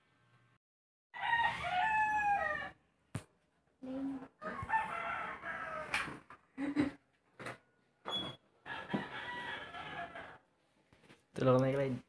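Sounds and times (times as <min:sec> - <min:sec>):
rooster crowing: 0:01.2 - 0:02.8, 0:04.4 - 0:06.1, 0:08.6 - 0:10.5.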